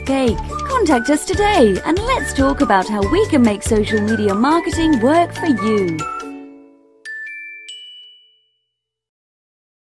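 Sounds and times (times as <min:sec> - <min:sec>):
bell-like chime ringing: 0:05.8 - 0:08.8.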